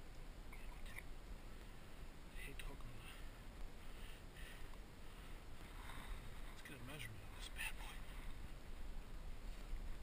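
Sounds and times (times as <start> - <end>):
faint water sounds: 0.0 - 10.0
wind rumbling on microphone: 0.0 - 10.0
muffled voice: 6.6 - 8.1.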